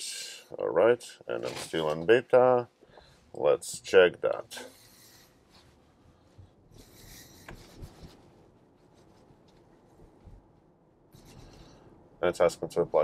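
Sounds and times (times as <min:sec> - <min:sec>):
soft rustle: 0:01.2 - 0:11.9.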